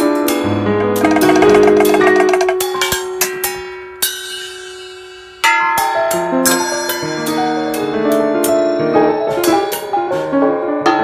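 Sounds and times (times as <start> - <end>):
piano notes: 0.4 - 3.2.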